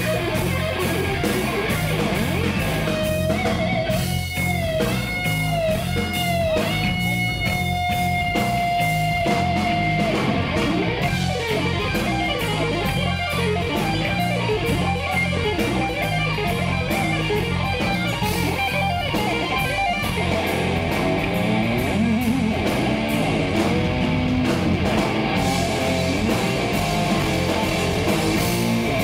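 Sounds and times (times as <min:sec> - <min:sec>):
bass guitar: 0:00.0 - 0:29.0
distorted electric guitar: 0:00.0 - 0:29.0
drums: 0:00.0 - 0:29.0.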